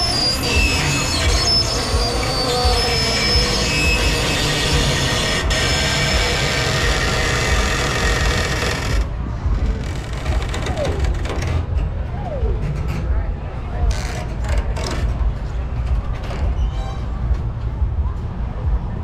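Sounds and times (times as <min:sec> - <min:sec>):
carousel ride rumble: 0:00.0 - 0:19.0.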